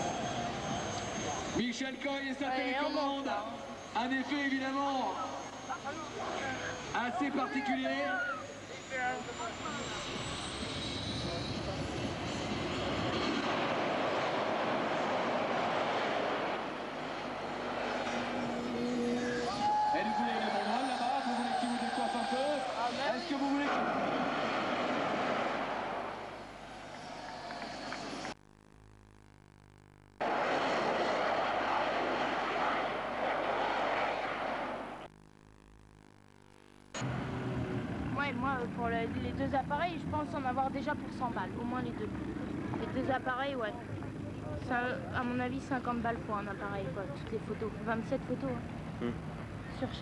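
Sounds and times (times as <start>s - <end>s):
crowd voices: 5.1s - 28.3s, 30.2s - 35.1s
kart engine running: 9.1s - 21.5s, 30.2s - 35.1s, 37.0s - 43.2s.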